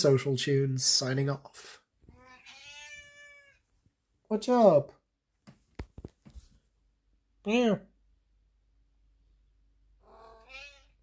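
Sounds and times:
cat meowing: 2.1s - 3.6s, 10.0s - 11.0s.

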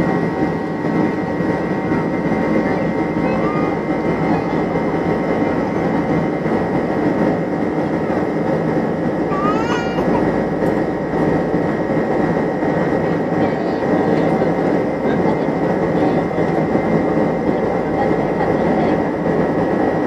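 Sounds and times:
jet engines and airflow: 0.0s - 20.0s.

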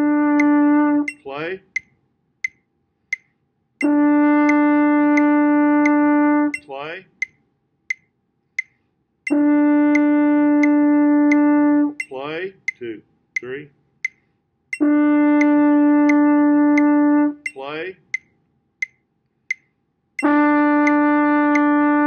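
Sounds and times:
french horn sustained tone: 0.0s - 1.2s, 3.8s - 6.6s, 14.8s - 17.5s, 20.2s - 22.0s
metronome clicking: 0.3s - 22.0s.

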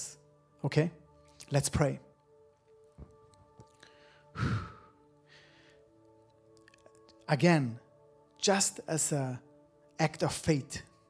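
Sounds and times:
soft background music: 0.0s - 11.0s
man breathing out heavily: 3.8s - 6.0s.

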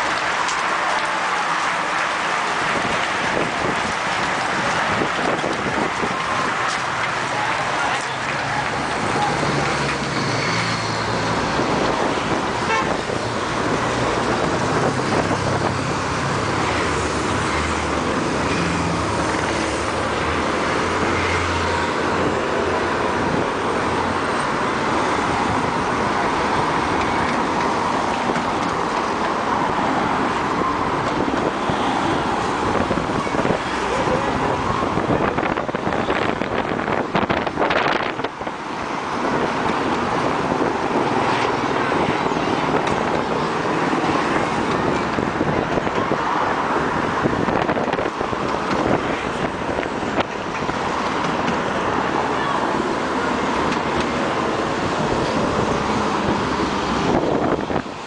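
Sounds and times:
crowd noise: 0.0s - 58.0s
road noise: 0.0s - 58.0s
car horns tooting: 12.6s - 13.2s.

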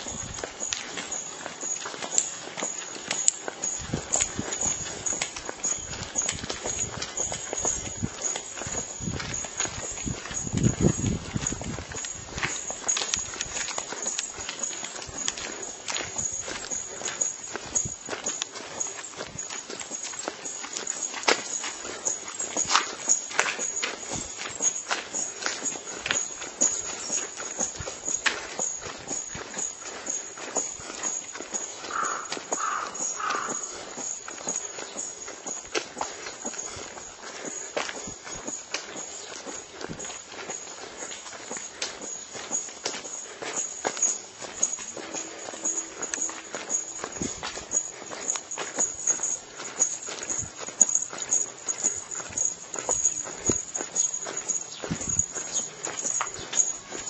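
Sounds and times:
footsteps on asphalt: 0.0s - 57.0s.

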